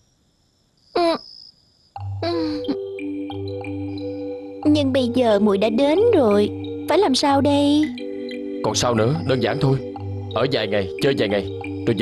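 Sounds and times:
woman's rising wordless vocal sound: 0:02.2 - 0:02.8.

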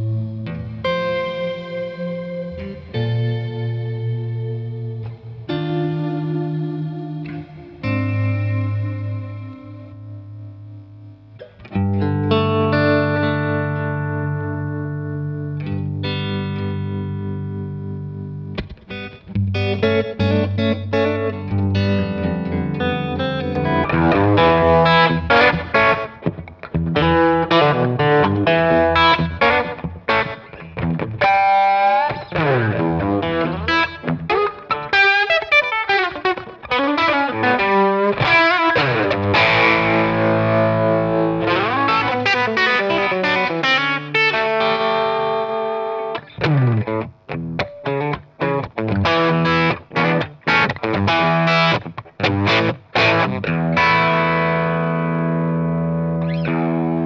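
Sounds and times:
overdriven electric guitar: 0:00.0 - 0:57.0.

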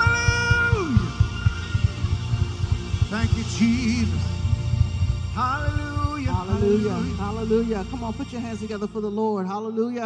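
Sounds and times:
gospel worship band music: 0:00.0 - 0:10.0.

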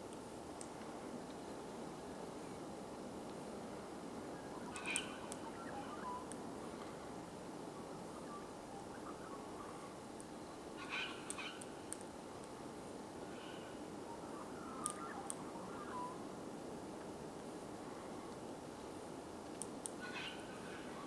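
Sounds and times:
outdoor background hiss: 0:00.0 - 0:21.0
birds giving short high calls: 0:04.5 - 0:06.3, 0:10.8 - 0:11.7, 0:20.0 - 0:21.0.

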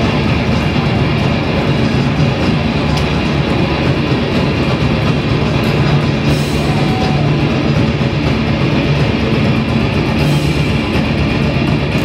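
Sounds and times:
hardcore band playing live: 0:00.0 - 0:12.0.

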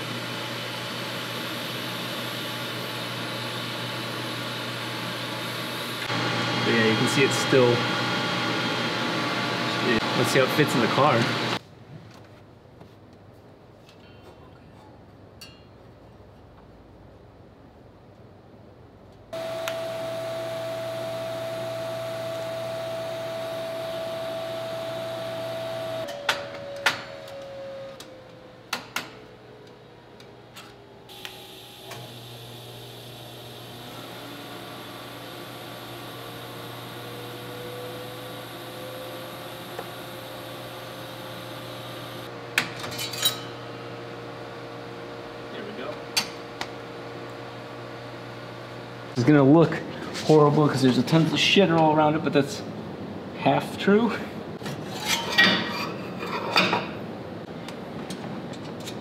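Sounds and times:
welding arc buzzing: 0:00.0 - 0:11.6, 0:31.1 - 0:42.3.

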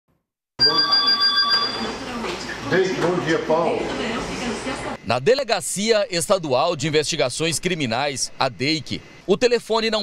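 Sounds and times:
landline telephone ringing: 0:00.6 - 0:02.2.

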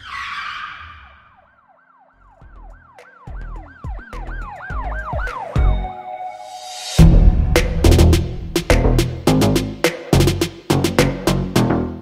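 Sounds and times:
siren-like wail swooping: 0:00.0 - 0:07.9
whoosh: 0:06.5 - 0:09.3
deep bass hits: 0:07.0 - 0:11.1.

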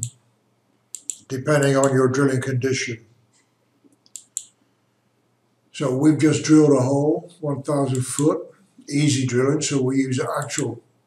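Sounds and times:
computer mouse clicks: 0:00.9 - 0:02.0, 0:03.8 - 0:04.6.

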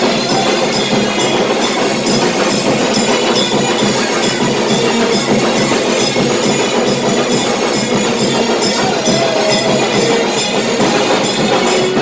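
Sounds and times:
loud music with percussive beat: 0:00.0 - 0:12.0.

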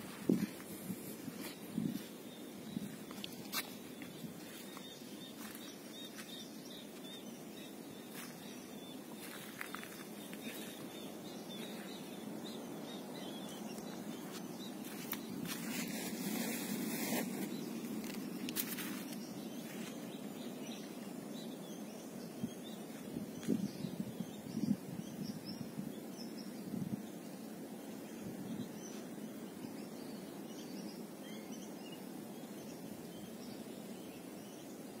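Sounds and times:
low background noise: 0:00.0 - 0:35.0.

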